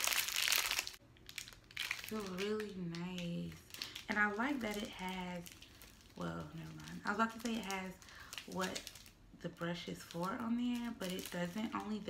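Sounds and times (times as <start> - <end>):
plastic sleeves crinkling: 0.0 - 12.0.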